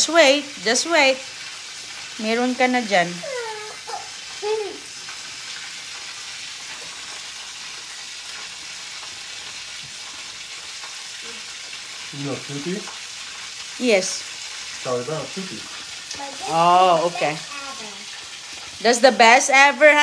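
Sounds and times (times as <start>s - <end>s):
steady hiss: 3.9s - 19.3s
person's voice: 16.2s - 17.8s.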